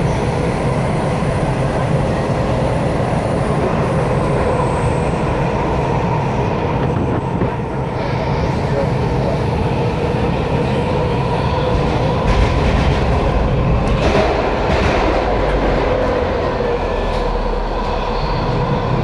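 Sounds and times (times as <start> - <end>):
constant train whine: 0.0 - 19.0
train wheels rumbling on track: 0.0 - 19.0.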